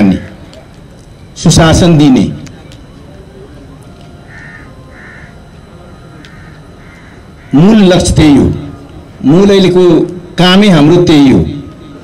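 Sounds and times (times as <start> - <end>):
low background hum: 0.0 - 12.0
crow cawing: 4.2 - 5.4, 6.2 - 7.7.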